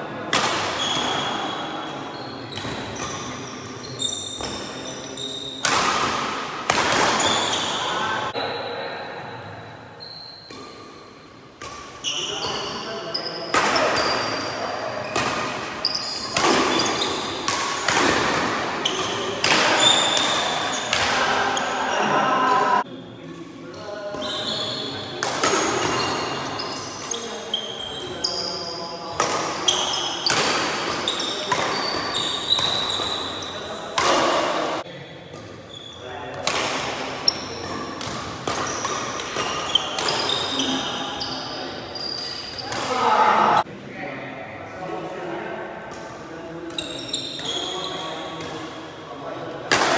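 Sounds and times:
shoes squeaking on wooden court: 0:00.8 - 0:05.7, 0:06.9 - 0:08.8, 0:10.0 - 0:22.8, 0:23.7 - 0:36.1, 0:37.2 - 0:43.6, 0:46.7 - 0:48.8.

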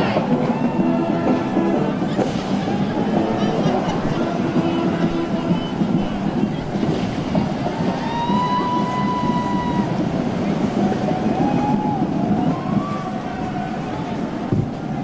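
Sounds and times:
parade street noise: 0:00.0 - 0:15.0
voices: 0:00.0 - 0:15.0.

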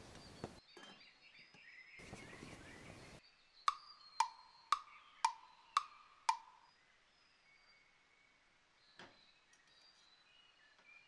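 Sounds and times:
faint birdsong: 0:00.0 - 0:11.0
wood-block ticks with ringing tone: 0:03.7 - 0:06.7.

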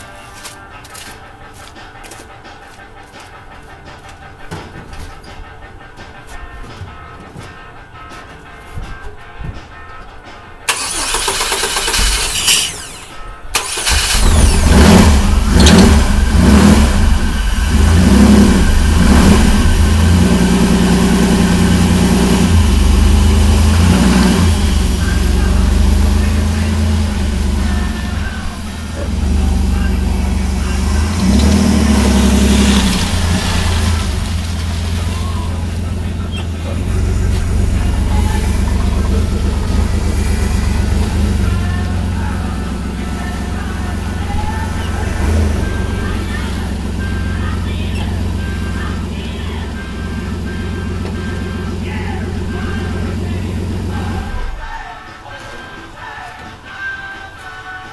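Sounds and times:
truck engine starting and revving: 0:10.7 - 0:54.7.

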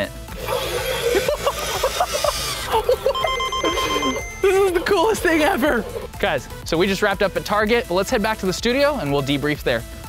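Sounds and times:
background music: 0:00.0 - 0:10.0
toy electronic sound effects: 0:00.4 - 0:06.2
steady high beep: 0:03.2 - 0:05.7.

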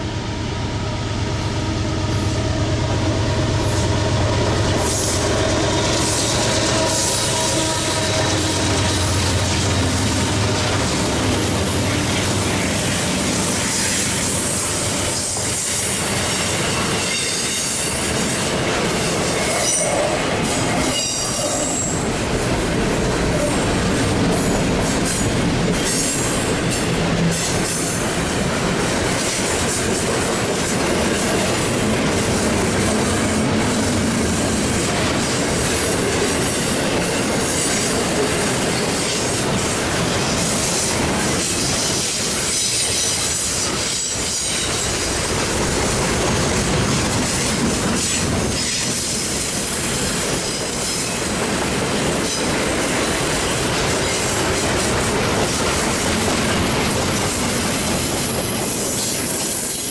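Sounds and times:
train wheels rolling on rails: 0:00.0 - 0:59.9.

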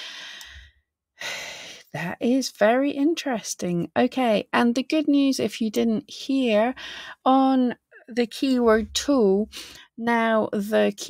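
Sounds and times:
woman breathing in: 0:00.0 - 0:01.9, 0:06.8 - 0:07.2.

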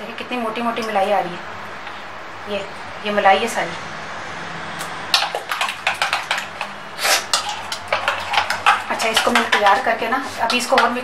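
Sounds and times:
spoon scraping plastic bowl: 0:04.8 - 0:11.0.

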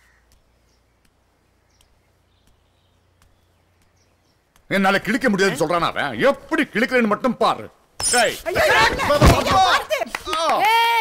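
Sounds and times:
faint bird chirps: 0:00.0 - 0:04.6.

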